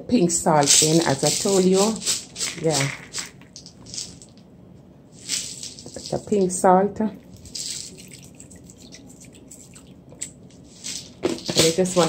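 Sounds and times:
salt crystals pattering into broth: 0:07.4 - 0:12.0
small drips and ticks: 0:07.9 - 0:10.4.

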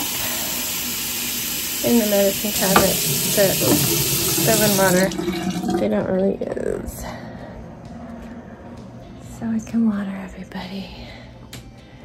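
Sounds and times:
tap water filling cup: 0:02.0 - 0:05.8.

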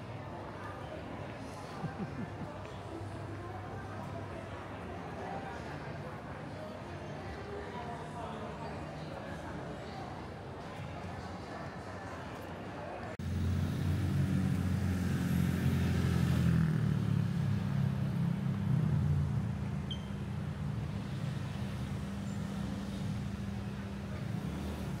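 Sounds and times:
cars passing: 0:13.2 - 0:25.0.

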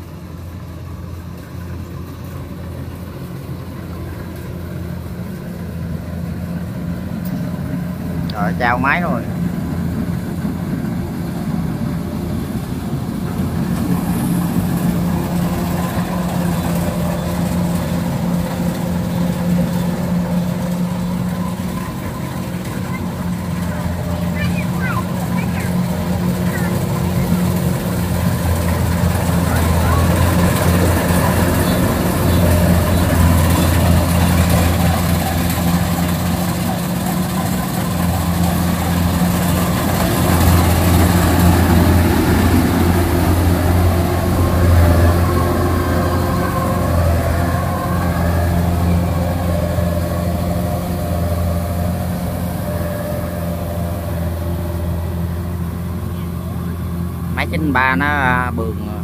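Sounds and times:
combine harvester engine drone: 0:00.0 - 0:59.0.

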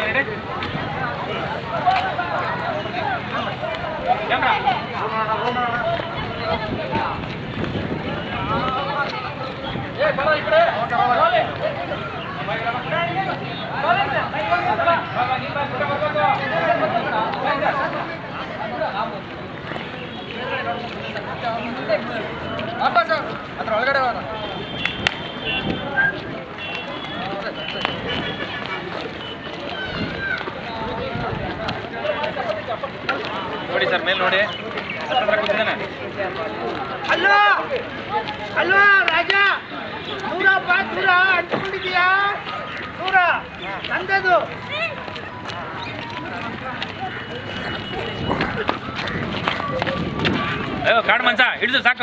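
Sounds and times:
footsteps in sandals on pavement: 0:00.0 - 0:52.0
indistinct voices: 0:00.0 - 0:52.0.

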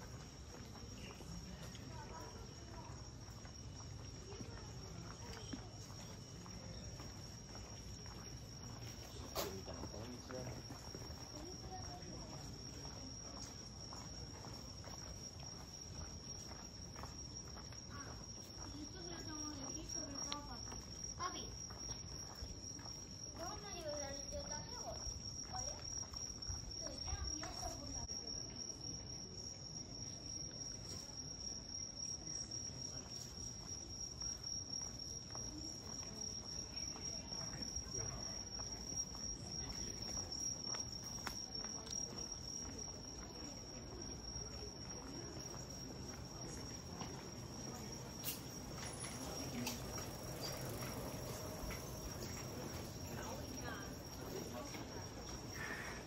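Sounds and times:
background street hum: 0:00.0 - 0:56.0
insects trilling: 0:00.0 - 0:56.0.

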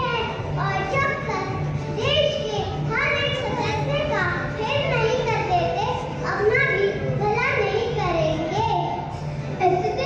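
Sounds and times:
children speaking through microphones: 0:00.0 - 0:10.0.

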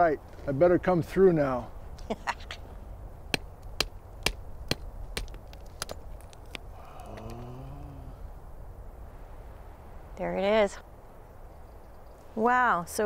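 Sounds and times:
hammer striking rock: 0:03.3 - 0:06.0.

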